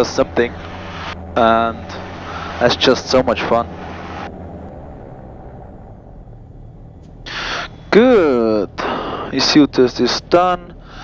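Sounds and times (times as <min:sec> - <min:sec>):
twin piston engines droning: 0:00.0 - 0:11.0.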